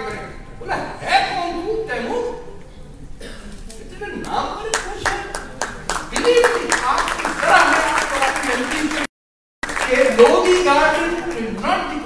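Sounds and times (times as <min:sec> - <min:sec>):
audience clapping: 0:04.7 - 0:11.6.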